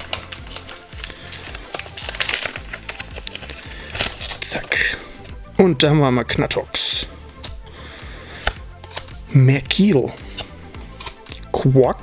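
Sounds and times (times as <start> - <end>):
card edges snapping: 0.0 - 5.3, 7.2 - 11.5.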